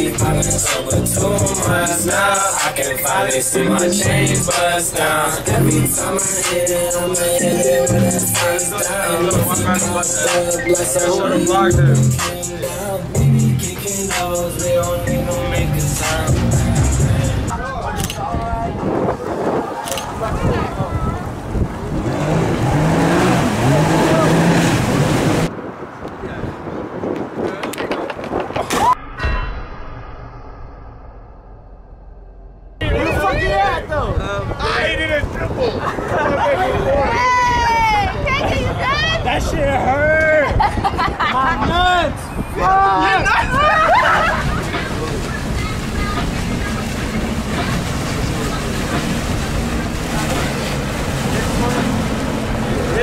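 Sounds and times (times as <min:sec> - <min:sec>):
water noise: 0:00.0 - 0:41.3, 0:42.1 - 0:53.0
wind: 0:00.0 - 0:53.0
person's voice: 0:05.5 - 0:18.8
steady low rumble: 0:28.7 - 0:34.1
people shouting and calling out: 0:32.8 - 0:40.7, 0:41.3 - 0:47.2.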